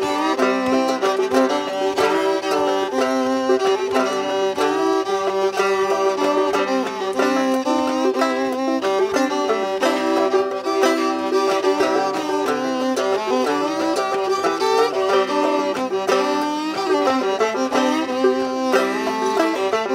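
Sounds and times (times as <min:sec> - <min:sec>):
banjo plucked rhythm: 0:00.0 - 0:19.9
bowed fiddle melody: 0:00.0 - 0:19.9.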